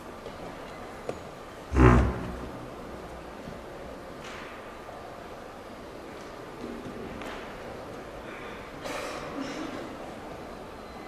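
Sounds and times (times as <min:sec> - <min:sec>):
large hall room noise: 0:00.0 - 0:11.0.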